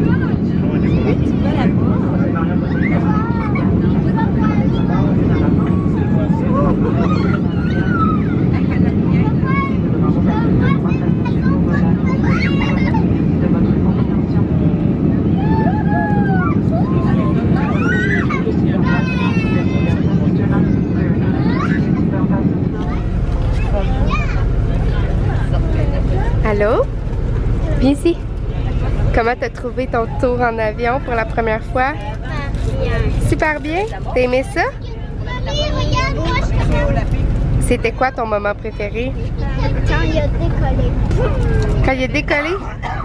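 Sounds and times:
bus engine rumble: 0.0 - 43.0
jet engines humming: 0.0 - 43.0
murmur of voices: 0.0 - 43.0
child's voice: 9.0 - 13.2, 16.1 - 23.0, 23.9 - 24.5, 34.7 - 37.0, 38.9 - 41.8.

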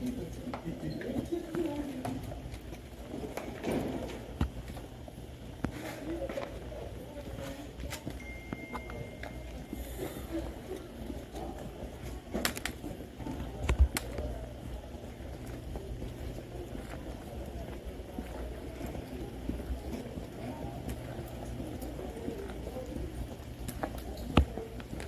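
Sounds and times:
footsteps walking: 0.0 - 25.0.

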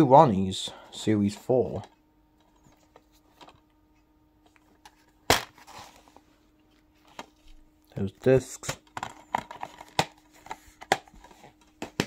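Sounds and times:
plastic case handling: 8.6 - 12.0.

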